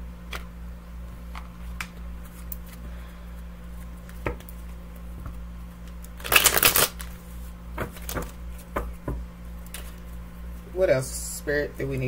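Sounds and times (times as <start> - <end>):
deck of cards shuffled by hand: 1.3 - 2.8, 3.7 - 8.7.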